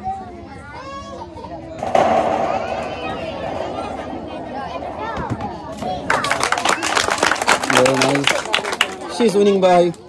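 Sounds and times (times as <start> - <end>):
crowd voices chattering: 0.0 - 10.0
football hitting tin sheet: 1.8 - 6.4
ball rattling on metal sheet: 1.8 - 8.4.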